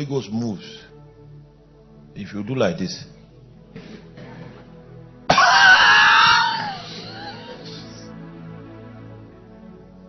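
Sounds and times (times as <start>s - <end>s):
soft background music: 0.0s - 10.0s
person screaming: 5.3s - 8.0s.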